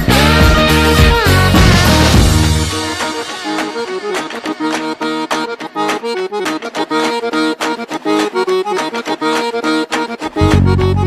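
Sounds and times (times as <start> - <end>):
driving drum beat: 0.0 - 4.3
accordion riff: 0.0 - 11.0.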